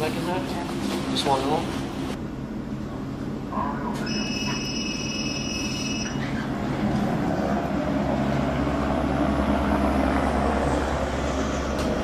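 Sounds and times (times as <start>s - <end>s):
helicopter hovering: 6.5s - 12.0s.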